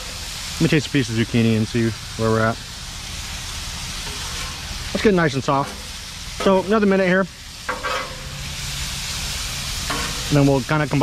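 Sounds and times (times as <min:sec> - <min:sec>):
vegetables sizzling on a griddle: 0:00.0 - 0:11.0.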